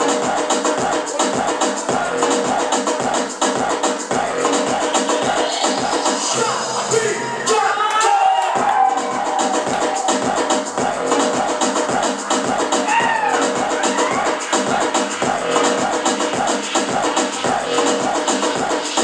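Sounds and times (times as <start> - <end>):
dance music with steady beat: 0.0 - 19.0.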